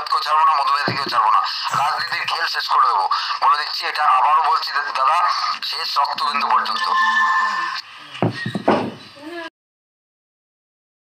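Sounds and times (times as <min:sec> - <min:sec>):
person talking: 0:00.0 - 0:07.8.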